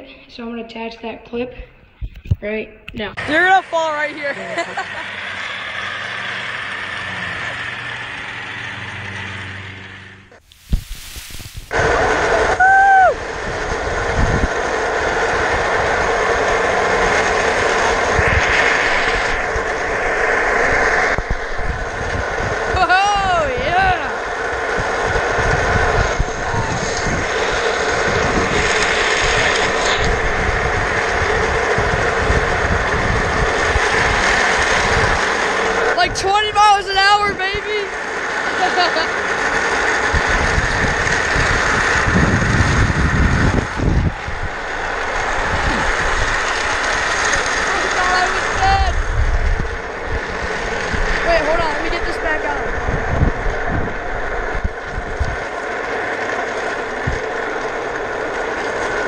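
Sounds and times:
chair casters rolling on asphalt: 3.2 - 10.4, 11.7 - 59.0
person yelling: 12.6 - 13.2, 22.7 - 24.2, 47.8 - 49.0.

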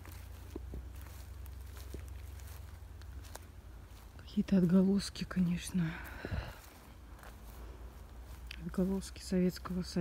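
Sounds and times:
footsteps on forest ground: 0.0 - 10.0
steady low rumble: 0.0 - 10.0.

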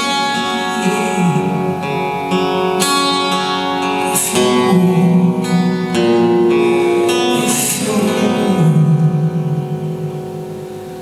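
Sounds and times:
acoustic guitar chord: 0.0 - 11.0
woman singing: 4.0 - 9.3.

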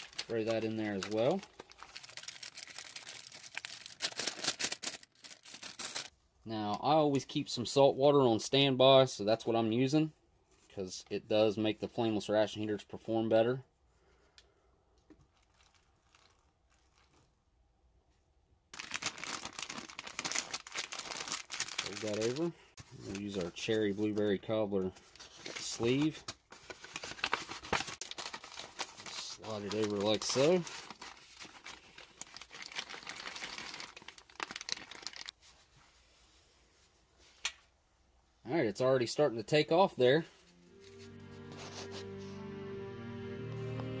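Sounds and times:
plastic bag crinkling: 0.0 - 6.1, 15.2 - 17.3, 18.8 - 23.7, 26.7 - 35.4.

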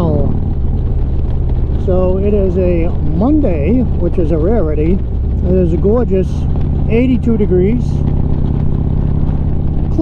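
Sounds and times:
motorcycle engine running: 0.0 - 10.0
wind and road noise: 0.0 - 10.0.

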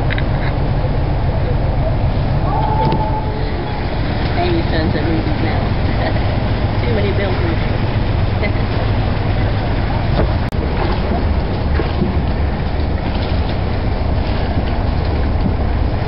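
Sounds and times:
boat engine rumbling: 0.0 - 16.0
people talking: 0.7 - 7.7, 8.4 - 8.8.

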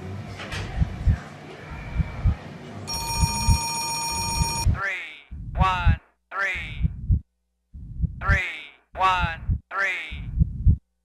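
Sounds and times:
telephone ringing: 2.9 - 4.7
heavy bass thumps: 9.3 - 9.6.

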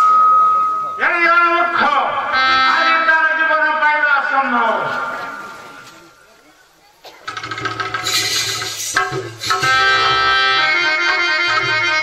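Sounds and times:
harmonium chord: 2.3 - 3.4, 9.6 - 12.0
drum strokes: 7.2 - 10.9.

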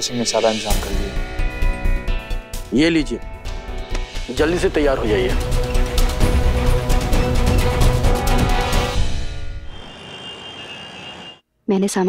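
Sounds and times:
dramatic background music: 0.0 - 9.7
night-time ambience: 9.4 - 11.4.

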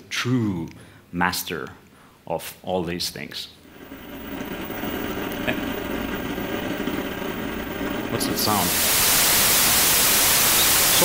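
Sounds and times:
low steady rumbling: 3.6 - 10.5.

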